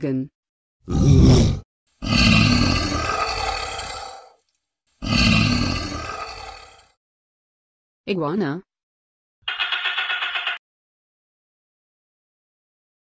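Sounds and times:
animal roars: 0.9s - 4.4s, 5.0s - 7.0s.

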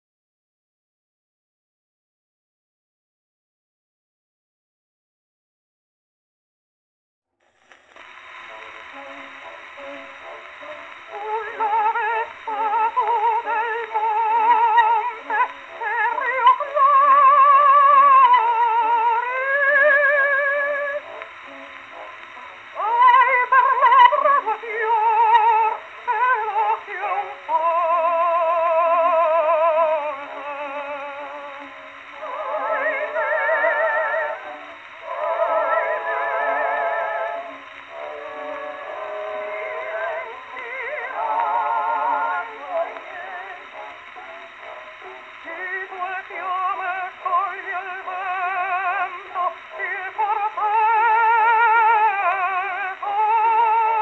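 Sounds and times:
record hiss: 7.3s - 54.0s
woman singing with vibrato on gramophone: 8.0s - 54.0s.

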